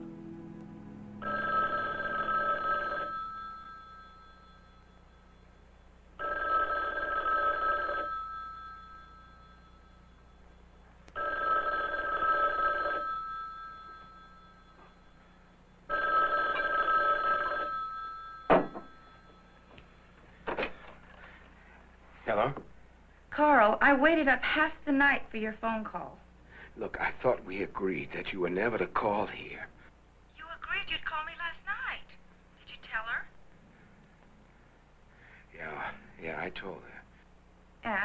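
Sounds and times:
telephone bell ringing: 1.2s - 19.8s.

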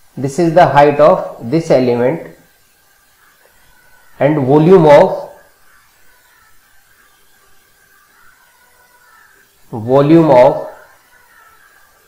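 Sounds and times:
faint steady hiss: 0.0s - 12.0s
faint thin hum: 0.0s - 12.0s.

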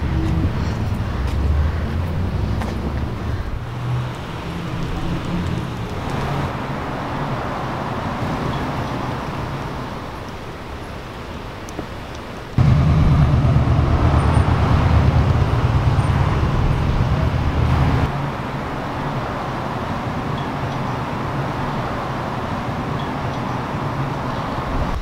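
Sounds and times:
heavy engine rumble: 0.0s - 6.6s, 12.6s - 18.4s
traffic hum: 0.0s - 25.0s.

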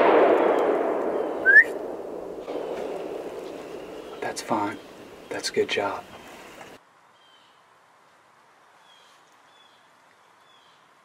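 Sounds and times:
faint echo of rifle shot: 0.0s - 5.3s.

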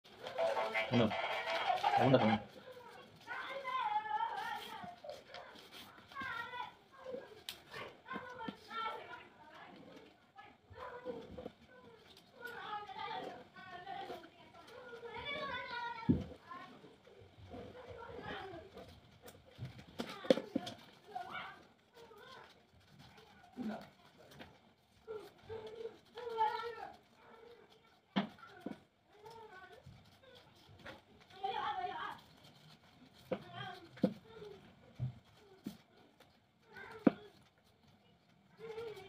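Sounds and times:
scissors cutting paper: 0.1s - 39.0s.

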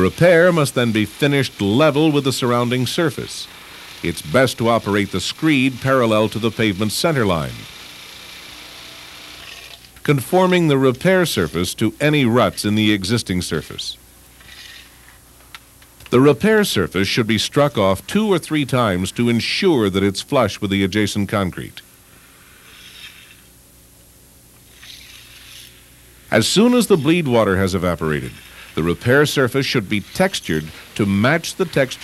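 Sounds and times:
low steady hum: 0.0s - 32.0s
work site background noise: 0.0s - 32.0s.

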